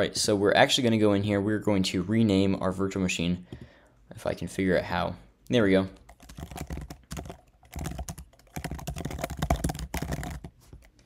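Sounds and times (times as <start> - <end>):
typing on computer keyboard: 6.1 - 10.9.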